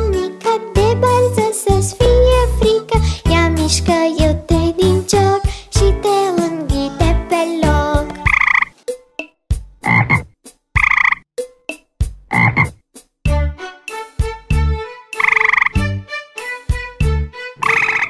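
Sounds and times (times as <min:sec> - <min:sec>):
frog croaking: 0:08.2 - 0:08.8, 0:09.8 - 0:11.2, 0:12.3 - 0:12.8, 0:15.2 - 0:15.8, 0:17.6 - 0:18.0.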